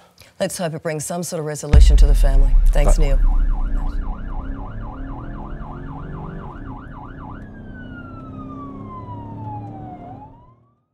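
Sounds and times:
low steady drone: 1.8 - 8.2
siren yelp and wail: 2.9 - 10.7.

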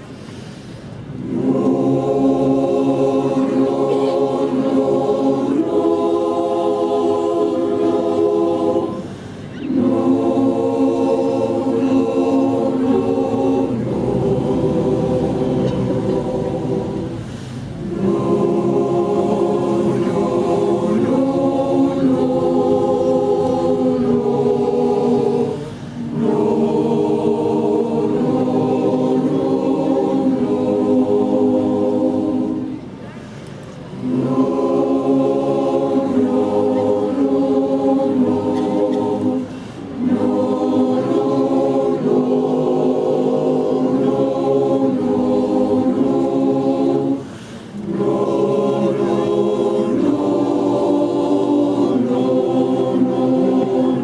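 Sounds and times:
singers breathing: 0.0 - 1.2, 9.0 - 9.7, 17.0 - 17.8, 25.6 - 26.1, 32.8 - 33.9, 39.4 - 40.0, 47.2 - 47.9
choir singing a cappella: 0.0 - 54.0.

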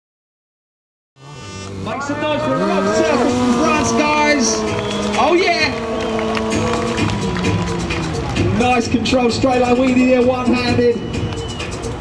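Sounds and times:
motorcycle engine running: 1.2 - 10.6
commentator speaking: 1.8 - 6.6, 8.4 - 11.0.

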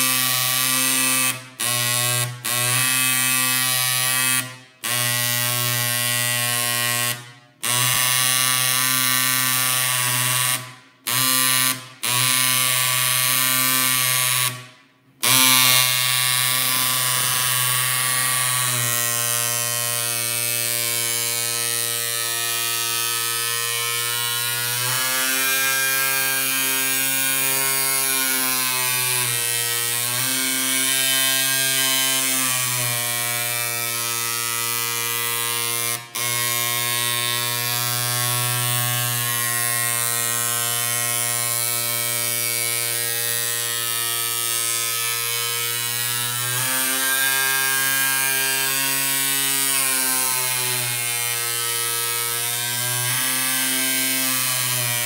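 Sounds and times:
marking machine buzzing on metal: 0.0 - 55.0.

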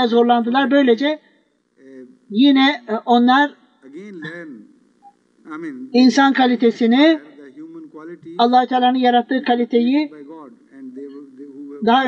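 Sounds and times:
person speaking: 0.0 - 1.2, 1.8 - 4.8, 5.4 - 12.0.

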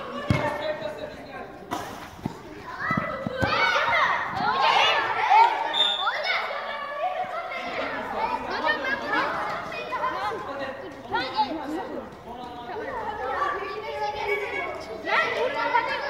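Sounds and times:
children shouting in echoing hall: 2.7 - 10.6, 13.0 - 16.0.

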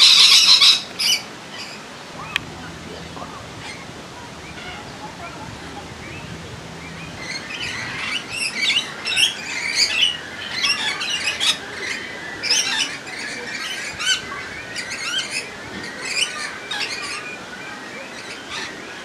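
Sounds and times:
birds chirping and squawking: 0.0 - 19.0.

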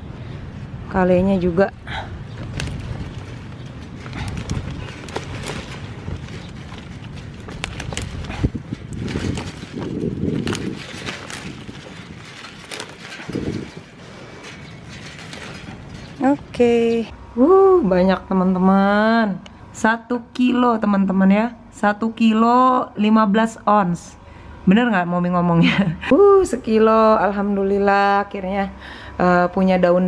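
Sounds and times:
leaves rustling: 1.8 - 17.1
kale leaves snapping: 2.4 - 13.9.

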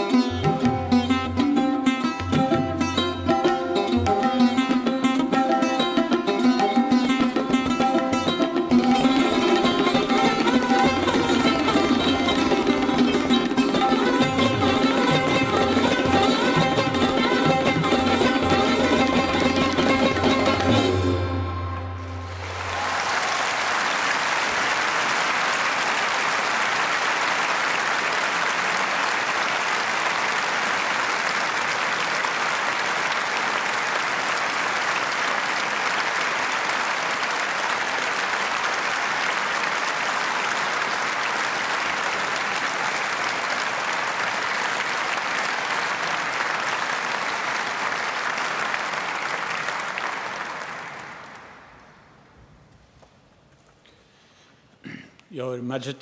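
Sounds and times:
audience applauding: 5.8 - 20.9, 22.0 - 52.0.

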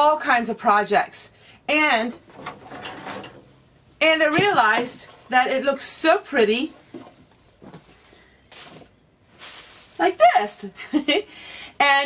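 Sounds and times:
bamboo tray handling noise: 6.8 - 10.0.

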